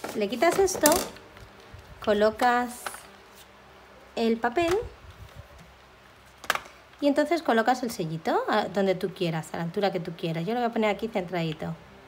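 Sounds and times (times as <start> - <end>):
paper rustling: 0.0 - 3.6.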